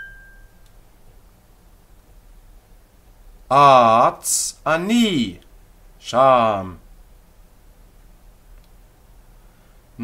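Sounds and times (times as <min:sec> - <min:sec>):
small bell ringing: 0:00.0 - 0:00.6.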